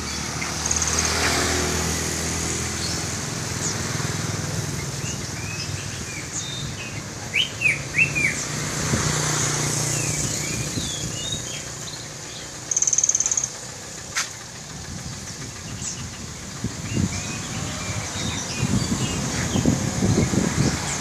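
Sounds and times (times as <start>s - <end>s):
low hum of traffic: 0.0s - 21.0s
songbirds chirping: 0.0s - 21.0s.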